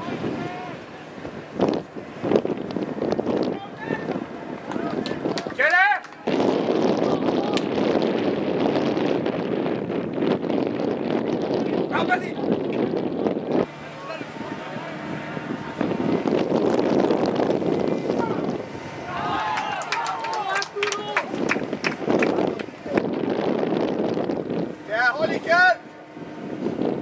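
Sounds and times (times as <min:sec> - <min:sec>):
wind buffeting microphone: 0:00.0 - 0:27.0
distant players calling: 0:18.1 - 0:21.8.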